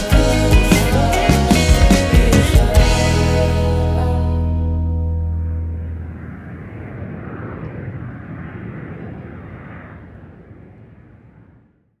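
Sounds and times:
airliner cabin rumble and hiss: 4.8s - 11.5s.

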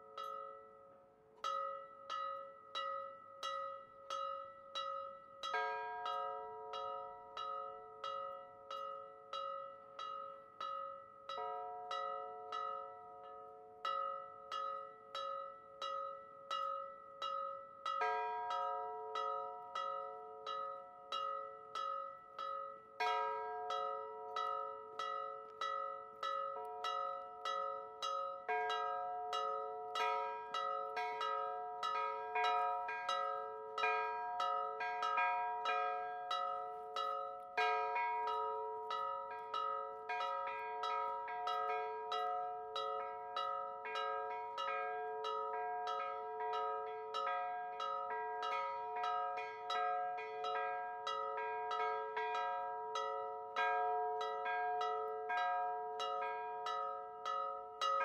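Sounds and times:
church bells pealing: 18.0s - 58.0s.

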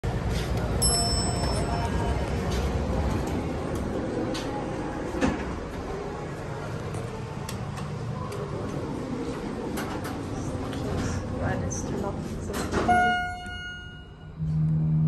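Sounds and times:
steady low hum: 0.1s - 15.0s.

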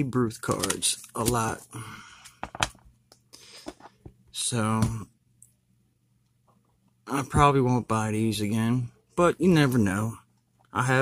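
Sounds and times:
cards being flicked through: 0.4s - 1.6s.

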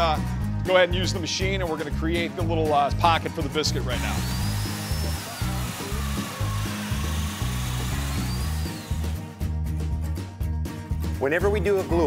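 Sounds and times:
background music with steady beat: 0.0s - 12.0s
plunge joiner cutting wood: 3.9s - 9.4s.

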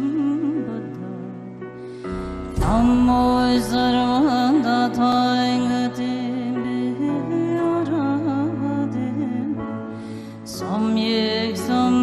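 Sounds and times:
steady low drone: 2.1s - 4.7s.

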